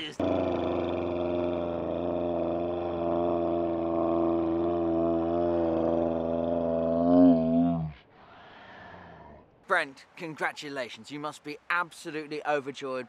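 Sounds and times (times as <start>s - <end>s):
low buzzing drone: 0.2s - 8.0s.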